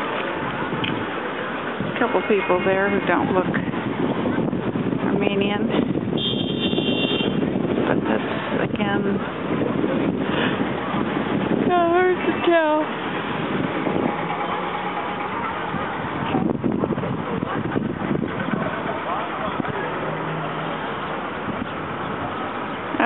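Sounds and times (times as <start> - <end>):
crowd voices talking: 0.0 - 6.0, 7.4 - 23.0
traffic noise: 0.0 - 23.0.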